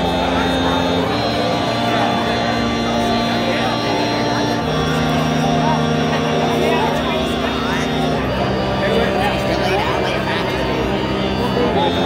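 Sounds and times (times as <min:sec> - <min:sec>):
crowd chatter: 0:00.0 - 0:12.0
sustained droning chord: 0:00.0 - 0:12.0.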